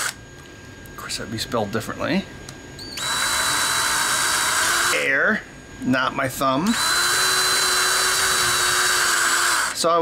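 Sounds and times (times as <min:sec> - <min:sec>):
electric drill whining: 0:02.9 - 0:05.1, 0:06.6 - 0:09.8.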